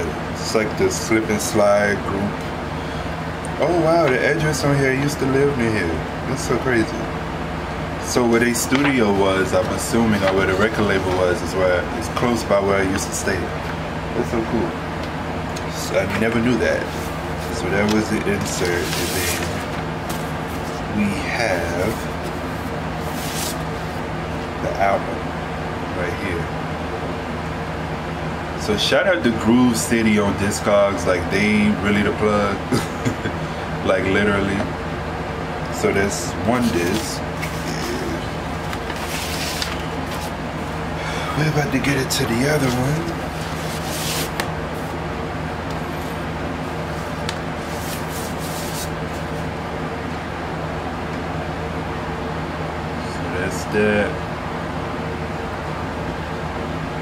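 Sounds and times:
room fans humming: 0.0s - 57.0s
paper sleeve rustling: 16.1s - 24.0s, 36.6s - 37.9s, 38.5s - 40.8s, 42.2s - 45.0s, 45.9s - 49.5s.

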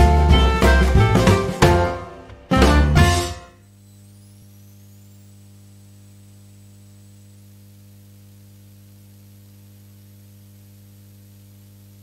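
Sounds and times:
electrical mains hum: 0.0s - 12.0s
high-pitched whine: 1.9s - 7.3s.

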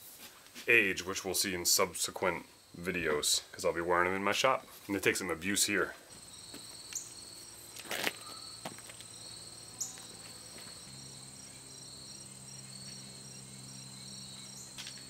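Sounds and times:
insects trilling: 1.0s - 15.0s.

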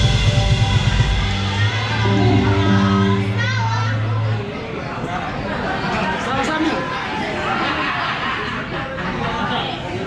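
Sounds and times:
live band held low note: 0.0s - 5.8s
crowd chatter: 0.0s - 10.0s.

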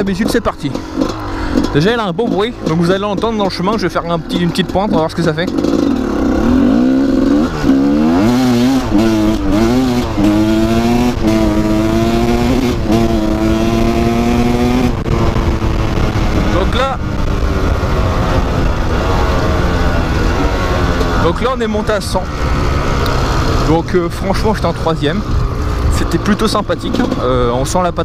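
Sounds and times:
motorcycle engine accelerating: 0.0s - 28.0s
wind and rolling noise: 0.0s - 28.0s.

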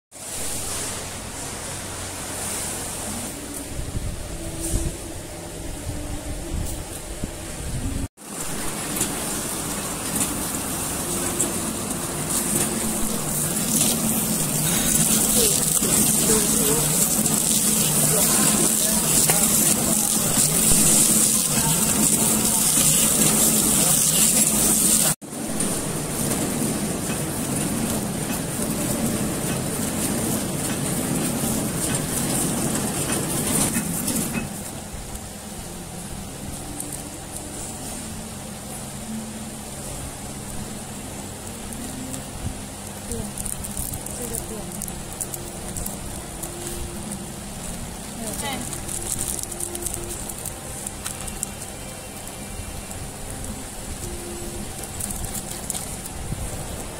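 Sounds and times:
packing machine running with hiss: 0.2s - 56.9s
voices: 10.2s - 25.2s, 41.6s - 47.4s, 48.1s - 48.9s.

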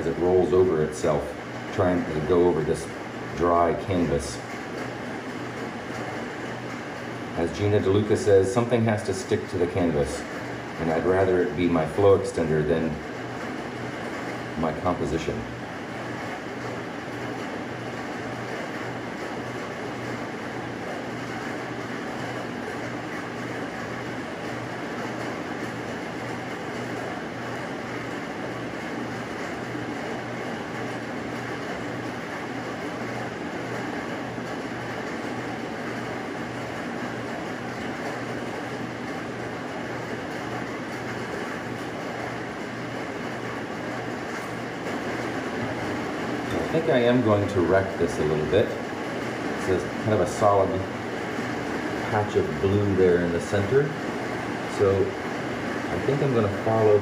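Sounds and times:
machine hum and whir: 0.0s - 57.0s.

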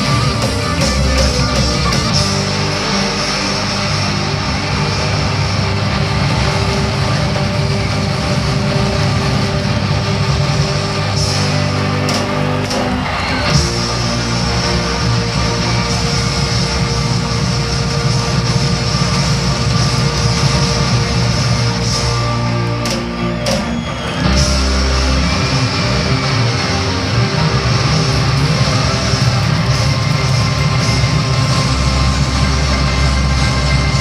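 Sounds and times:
rock music with electric guitars: 0.0s - 34.0s.

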